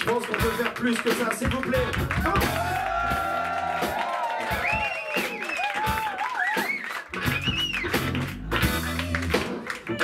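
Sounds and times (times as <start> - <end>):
live band playing: 0.0 - 10.0
drum hits: 1.1 - 6.7.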